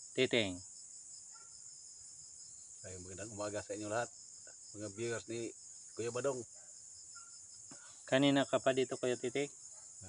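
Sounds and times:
high-pitched insect chorus: 0:00.0 - 0:10.0.

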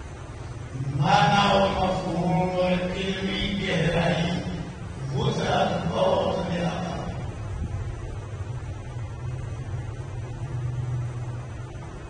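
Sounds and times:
man chanting melodically: 0:00.6 - 0:07.5.

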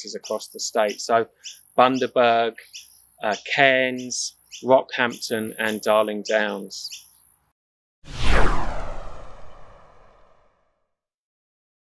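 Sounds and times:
whoosh with deep low rumble: 0:08.1 - 0:10.6.

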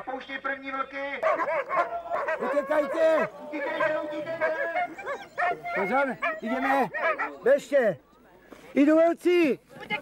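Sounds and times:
wolves yelping: 0:01.2 - 0:07.6
people shouting: 0:01.4 - 0:05.9.

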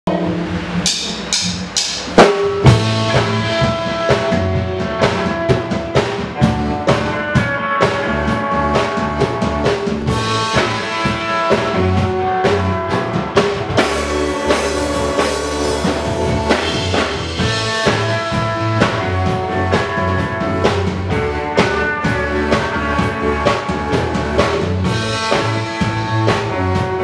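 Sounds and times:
drum kit beat: 0:00.0 - 0:27.0
electric guitar: 0:02.1 - 0:27.0.

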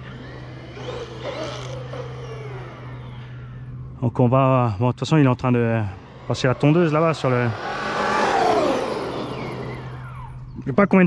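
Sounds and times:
electric motor whining: 0:00.0 - 0:04.0, 0:05.1 - 0:10.6
lawnmower drone: 0:00.0 - 0:10.8.

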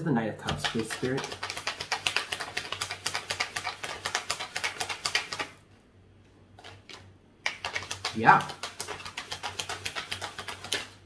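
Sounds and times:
cards being shuffled: 0:00.4 - 0:05.6, 0:06.6 - 0:11.0.

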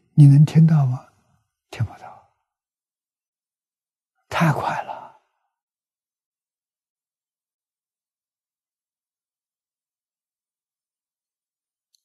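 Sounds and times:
man speaking: 0:00.2 - 0:01.0.

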